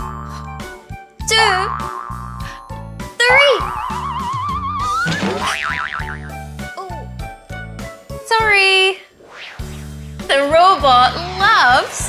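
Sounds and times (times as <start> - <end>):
bouncy children's music: 0.0 - 8.8
wobbling boing: 1.5 - 2.5, 3.7 - 6.4
rising cartoon whistle: 3.6 - 5.6.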